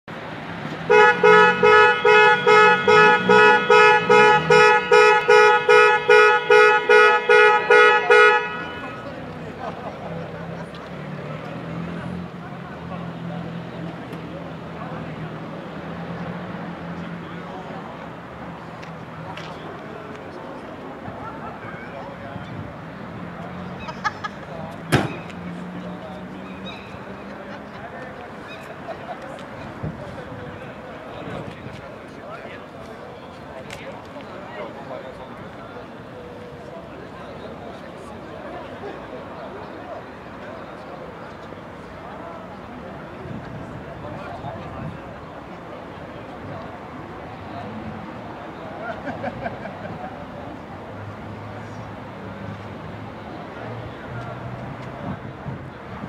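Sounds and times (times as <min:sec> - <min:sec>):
car horn short blasts: 0:00.9 - 0:09.0
faint voices: 0:06.8 - 0:56.0
car door slamming: 0:24.8 - 0:25.3.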